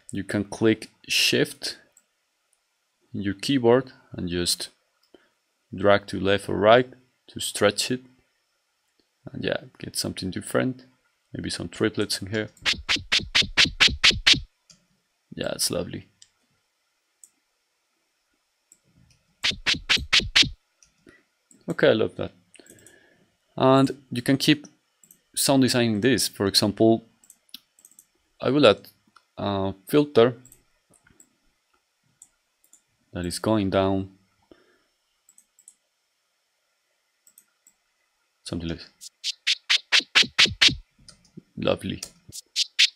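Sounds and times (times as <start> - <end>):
computer mouse clicks: 12.6 - 14.4, 19.4 - 20.6, 27.2 - 28.1, 35.3 - 35.8, 37.2 - 37.8
faint computer mouse clicks: 22.6 - 23.0, 25.0 - 25.2, 27.2 - 28.1, 32.2 - 32.8, 35.3 - 35.8, 37.2 - 37.8.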